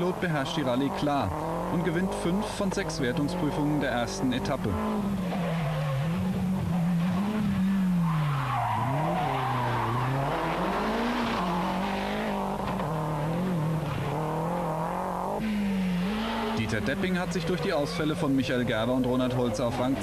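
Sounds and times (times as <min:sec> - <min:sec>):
rally car engine revving: 0:00.0 - 0:20.0.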